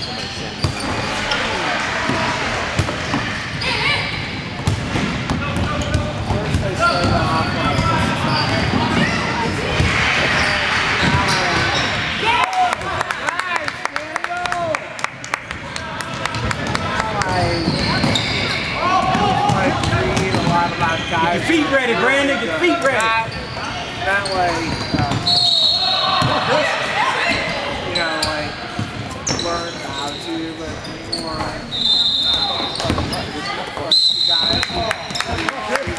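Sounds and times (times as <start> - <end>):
sneakers squeaking: 0.0 - 1.6, 2.2 - 12.2, 16.3 - 35.9
voices in background: 0.0 - 35.9
referee's whistle blast: 25.2 - 26.1, 31.7 - 32.9, 33.9 - 35.2.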